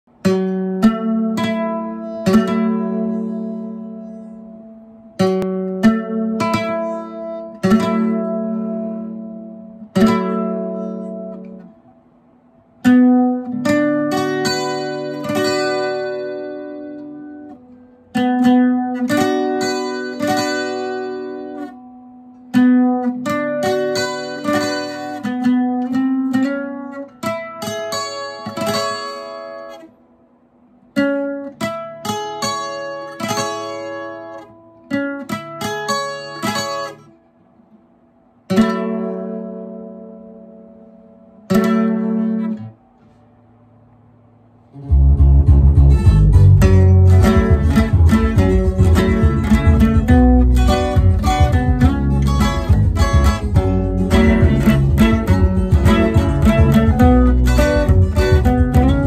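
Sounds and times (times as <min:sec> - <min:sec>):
acoustic guitar chords ringing: 0:00.1 - 0:59.0
fast guitar strumming: 0:44.8 - 0:59.0.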